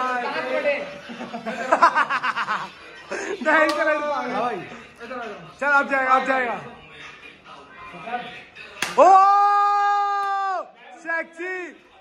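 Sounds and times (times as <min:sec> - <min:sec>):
hand slap: 0:03.6 - 0:03.9, 0:08.8 - 0:09.1.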